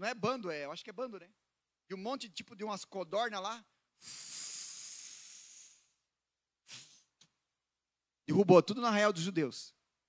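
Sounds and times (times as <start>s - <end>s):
man hissing shhh into microphone: 4.0s - 7.2s.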